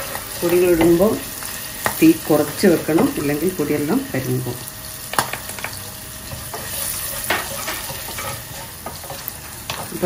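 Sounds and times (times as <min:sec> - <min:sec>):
chillies sizzling in hot oil: 0:00.0 - 0:10.0.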